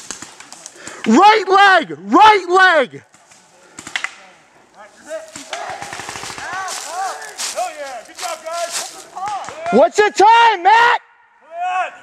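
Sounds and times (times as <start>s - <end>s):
distant shouting: 4.4s - 12.0s.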